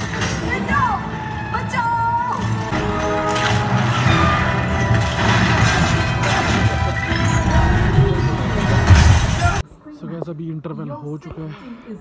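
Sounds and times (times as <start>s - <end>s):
film soundtrack music: 0.0s - 9.6s
action sound effects: 2.7s - 9.6s.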